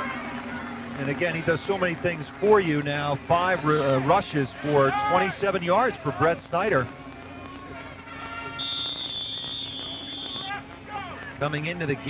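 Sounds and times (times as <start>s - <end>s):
faint low hum: 0.0s - 12.0s
referee's whistle blast: 8.2s - 10.6s.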